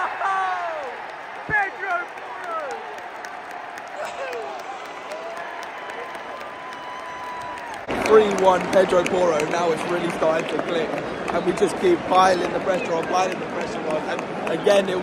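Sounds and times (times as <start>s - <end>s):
fans shouting: 0.0s - 13.1s
stadium crowd cheering: 0.0s - 15.0s
long held shout: 4.0s - 7.8s.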